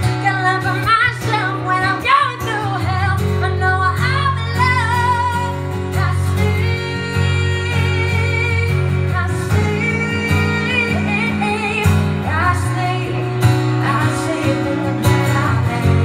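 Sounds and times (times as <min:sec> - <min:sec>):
strummed acoustic guitar: 0:00.0 - 0:16.0
woman singing: 0:00.0 - 0:16.0.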